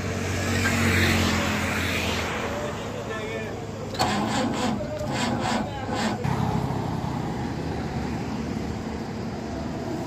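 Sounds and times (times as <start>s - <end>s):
passing traffic rumble: 0.0s - 10.0s
rasping scrapes: 4.0s - 6.2s.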